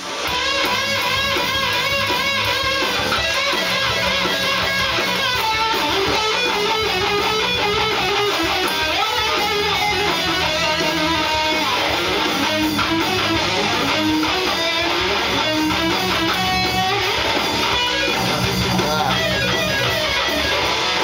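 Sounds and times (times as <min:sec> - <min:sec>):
electric guitar lead: 0:00.0 - 0:21.0
rock band backing: 0:00.0 - 0:21.0.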